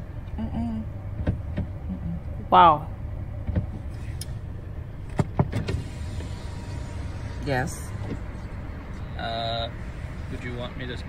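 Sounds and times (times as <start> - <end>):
car rumble inside cabin: 0.0 - 11.0.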